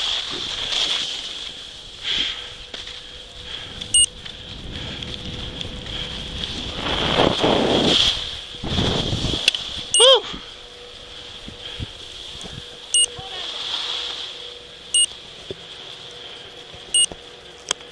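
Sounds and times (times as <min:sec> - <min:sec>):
skis sliding over packed snow: 0:00.0 - 0:17.9
wind on microphone: 0:03.6 - 0:10.5
short electronic beeps: 0:03.9 - 0:04.1, 0:09.9 - 0:10.2, 0:12.9 - 0:13.2, 0:14.9 - 0:15.1, 0:16.9 - 0:17.1.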